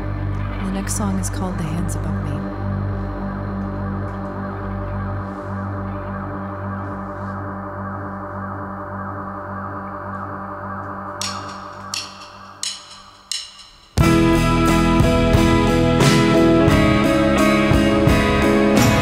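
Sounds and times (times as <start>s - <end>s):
pulsing musical drone: 0.0s - 13.4s.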